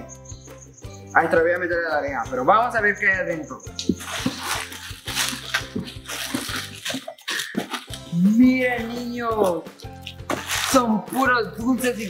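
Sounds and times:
background music: 0:00.0 - 0:12.0
plastic candy wrappers crinkling: 0:04.0 - 0:08.2, 0:10.0 - 0:10.8.

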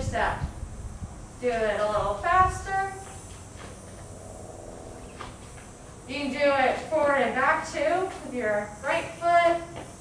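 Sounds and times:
high-pitched drone: 0:02.4 - 0:06.3.

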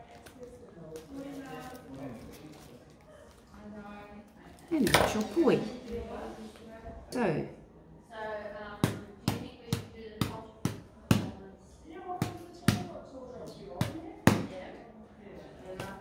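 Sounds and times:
woman's wordless voice: 0:03.5 - 0:07.7
ball striking hand and arm: 0:08.8 - 0:11.4, 0:12.2 - 0:13.0, 0:13.7 - 0:14.6, 0:15.8 - 0:16.0.

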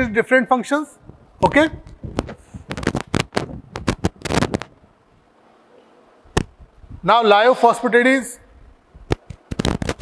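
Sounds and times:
sharp clicks and knocks: 0:09.1 - 0:10.0.

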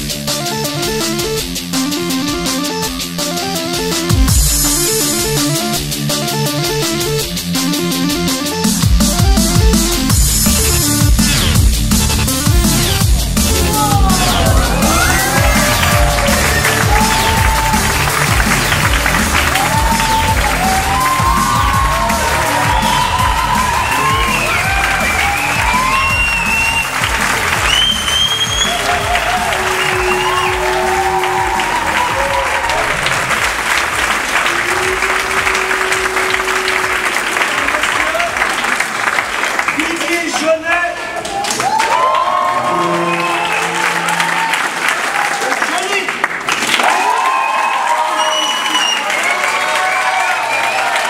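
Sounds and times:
electronic music with heavy beat: 0:00.0 - 0:38.3
audience applauding and cheering: 0:10.0 - 0:51.0
whoops: 0:13.6 - 0:18.2, 0:19.4 - 0:33.2, 0:34.3 - 0:38.6, 0:41.2 - 0:45.4, 0:46.8 - 0:51.0.

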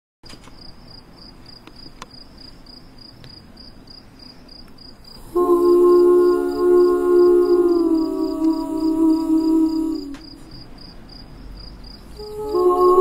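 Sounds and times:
cricket chirping: 0:00.3 - 0:13.0
faint hiss: 0:00.4 - 0:13.0
loud held musical chord: 0:05.2 - 0:10.5, 0:12.2 - 0:13.0.

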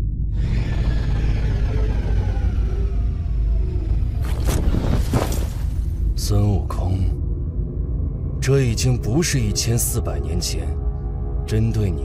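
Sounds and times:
heavy low rumble: 0:00.0 - 0:12.0.

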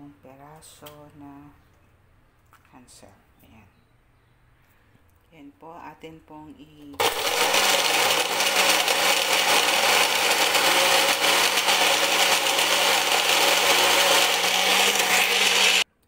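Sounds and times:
blender motor whirring: 0:07.0 - 0:15.9.

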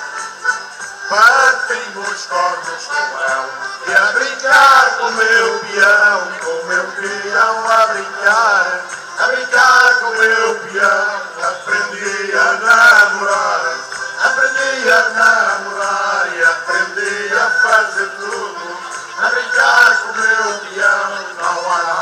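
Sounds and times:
live folk band: 0:00.0 - 0:22.0
men singing a lively song: 0:01.0 - 0:22.0.

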